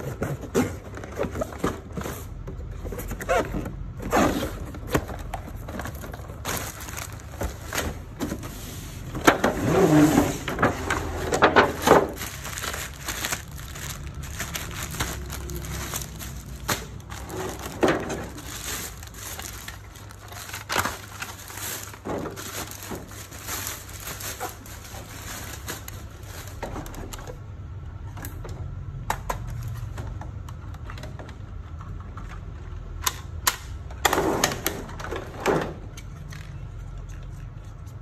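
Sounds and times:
plastic packaging crinkling: 0.4 - 27.3.

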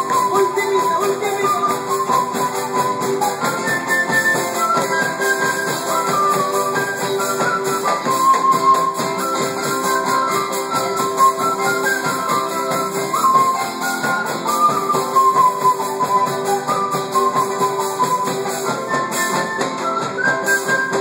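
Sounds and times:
electric guitar: 0.0 - 21.0
strummed acoustic guitar: 0.0 - 21.0
wooden flute melody: 0.0 - 21.0.

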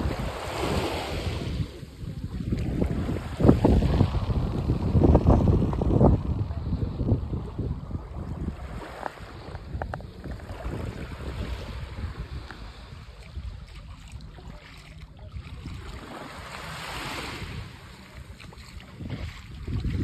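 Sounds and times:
small waves lapping on sand: 0.0 - 20.0
wind noise on microphone: 0.0 - 20.0.

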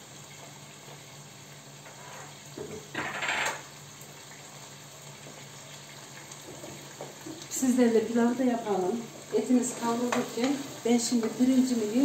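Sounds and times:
kitchen tap running: 2.6 - 12.0.

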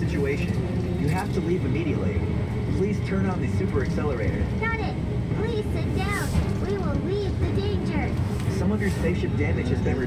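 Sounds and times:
deep steady rumble: 0.0 - 10.0.

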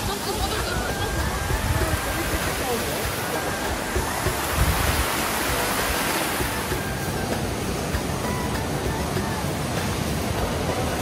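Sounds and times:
waterfall splashing over rocks: 0.0 - 11.0.

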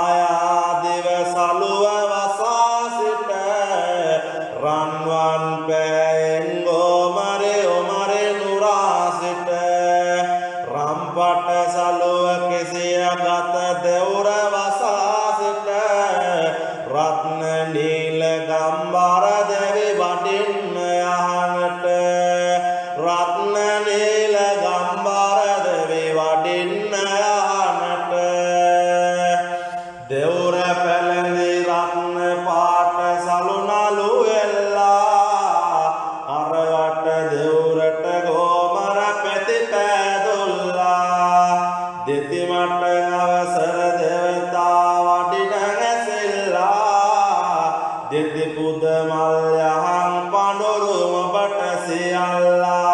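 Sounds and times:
person chanting verses: 0.0 - 52.9.

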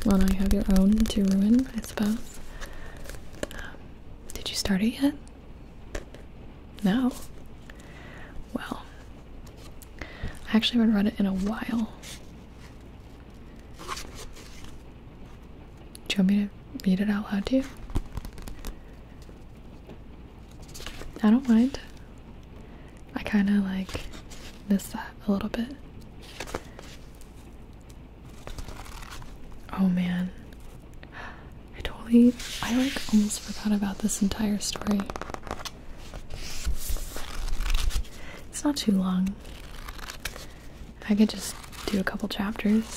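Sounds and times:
book pages rustling: 0.0 - 3.7, 8.8 - 14.8, 17.6 - 19.4, 20.4 - 22.1, 23.8 - 24.7, 26.2 - 27.6, 28.2 - 29.7, 32.2 - 38.2, 39.2 - 42.9.

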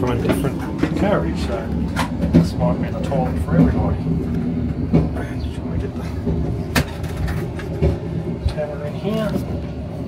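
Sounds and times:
train rumbling: 0.0 - 10.0.

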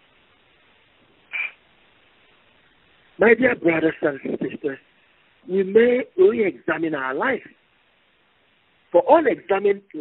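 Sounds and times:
faint steady hiss: 0.0 - 10.0
short hissing sound: 1.3 - 1.6.

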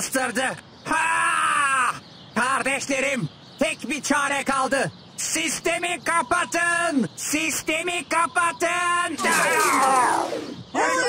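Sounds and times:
cartoon character wailing: 9.2 - 11.0.

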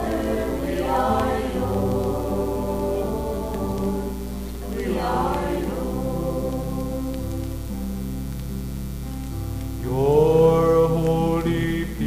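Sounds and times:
acoustic guitar: 0.0 - 12.0
man singing a long held note: 9.8 - 12.0.

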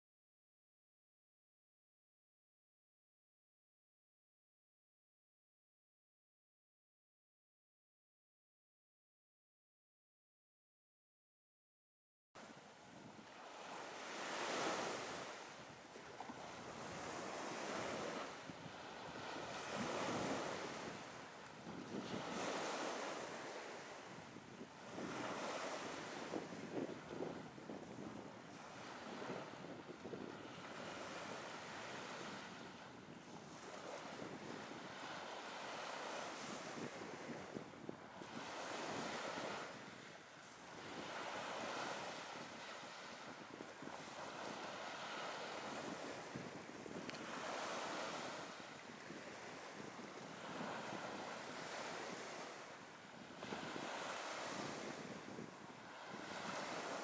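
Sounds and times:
sea waves breaking on beach: 12.4 - 57.0.

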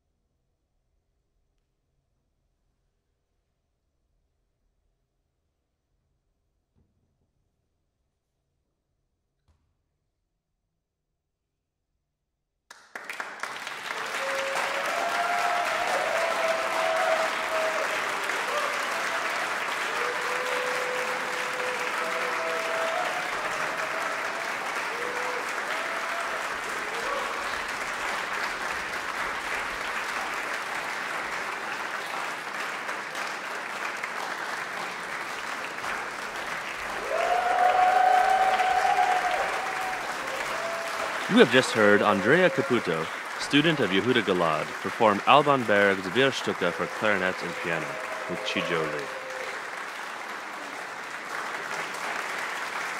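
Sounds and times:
audience applauding: 12.7 - 52.9
crowd cheering: 12.7 - 52.9
voices calling out: 41.3 - 49.2.

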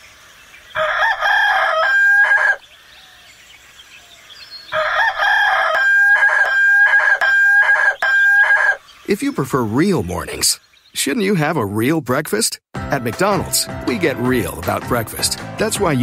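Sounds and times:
rooster crowing: 0.8 - 2.6, 4.7 - 8.8.

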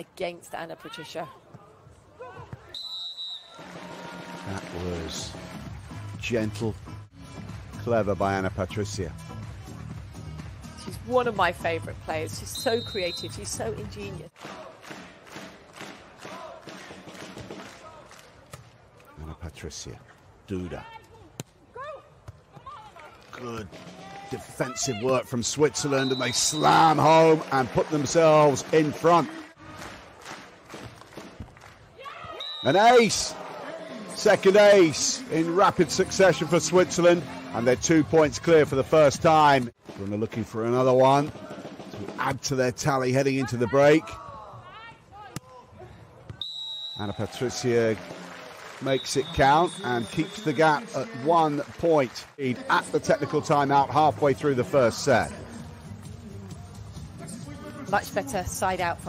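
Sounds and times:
players and crowd calling: 0.0 - 6.2, 12.4 - 13.8, 20.6 - 58.6
background music with steady beat: 3.6 - 14.3, 53.6 - 59.0.

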